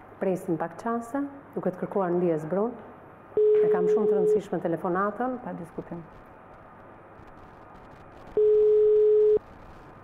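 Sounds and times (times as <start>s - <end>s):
telephone ringback tone beep: 3.4s - 4.4s, 8.4s - 9.4s.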